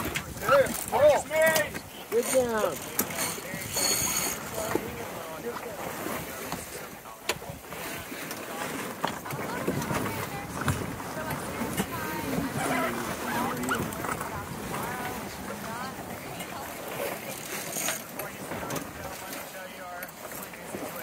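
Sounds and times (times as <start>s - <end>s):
indistinct talk: 0.0s - 21.0s
rushing water: 0.0s - 21.0s
wind: 0.0s - 21.0s.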